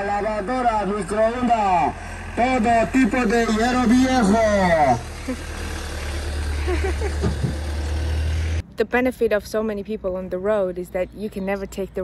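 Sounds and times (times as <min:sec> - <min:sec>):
van engine driving past: 0:00.0 - 0:08.7.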